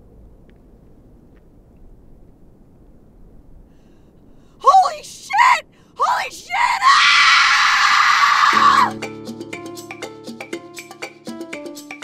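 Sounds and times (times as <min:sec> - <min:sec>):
woman screaming: 0:04.7 - 0:09.0
woman crying out: 0:08.5 - 0:09.0
music with struck notes: 0:08.6 - 0:12.0.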